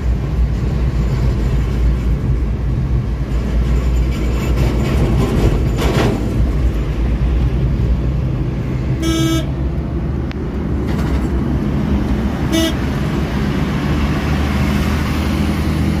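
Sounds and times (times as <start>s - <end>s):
van engine and road rumble: 0.0s - 16.0s
horn toots: 9.0s - 9.6s, 12.4s - 13.0s.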